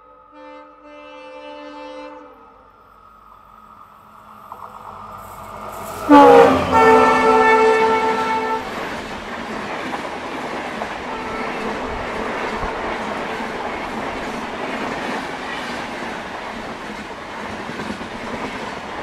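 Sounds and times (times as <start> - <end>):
passenger train running past: 0.0 - 19.0
locomotive horn: 0.2 - 2.7, 6.0 - 8.9, 11.1 - 11.8.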